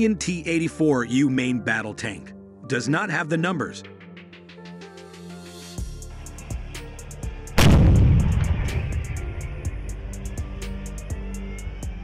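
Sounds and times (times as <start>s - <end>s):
tank gun blast: 7.6s - 9.3s
low rumble: 7.6s - 10.6s.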